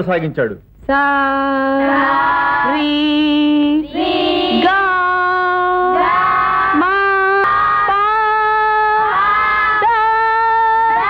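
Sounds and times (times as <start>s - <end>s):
voices chanting in unison: 1.8s - 11.0s.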